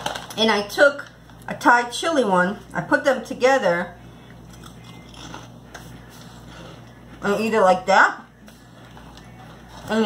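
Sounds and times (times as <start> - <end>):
chips crunching while chewed: 4.4 - 7.2.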